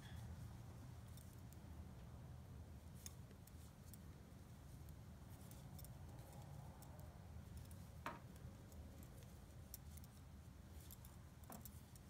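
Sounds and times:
low room hum: 0.0s - 12.0s
knitting needles clicking: 4.8s - 12.0s.

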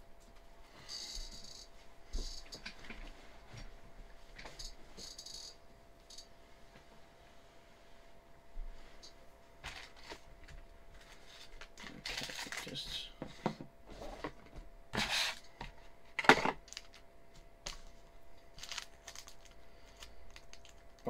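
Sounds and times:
plastic bags crinkling: 11.5s - 12.8s, 16.6s - 17.1s, 17.7s - 21.0s
small metal parts clinking: 18.6s - 20.8s.

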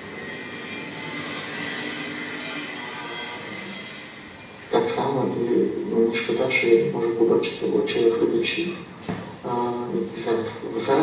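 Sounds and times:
steady droning noise: 0.0s - 11.0s.

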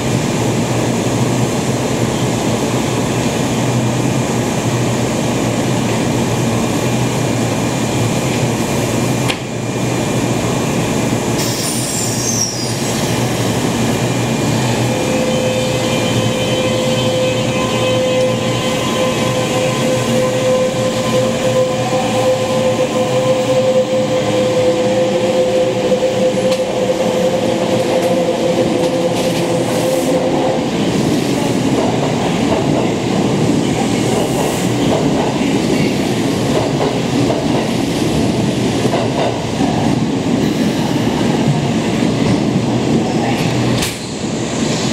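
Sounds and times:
train wheels clattering on rail: 9.2s - 9.6s, 27.7s - 44.2s.

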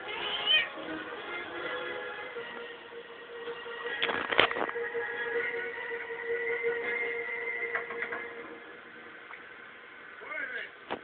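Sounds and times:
cat meowing: 0.0s - 0.8s
background music: 0.0s - 10.2s.

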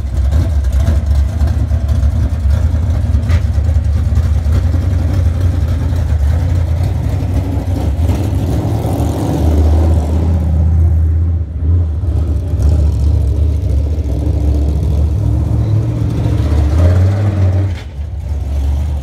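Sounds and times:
race car engine revving: 0.0s - 19.0s.

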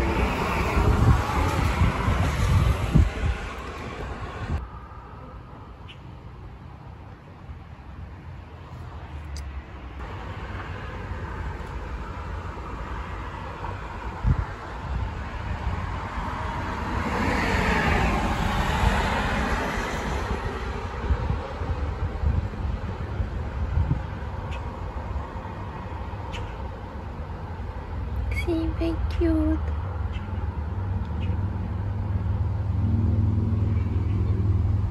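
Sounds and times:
vehicle passing by: 0.0s - 4.8s, 8.7s - 24.0s, 27.2s - 34.9s.

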